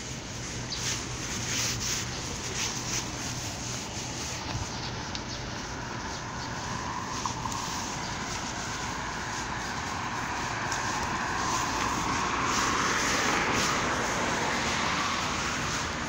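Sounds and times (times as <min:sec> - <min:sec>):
road traffic: 0:00.0 - 0:16.0
vehicle passing: 0:00.0 - 0:16.0.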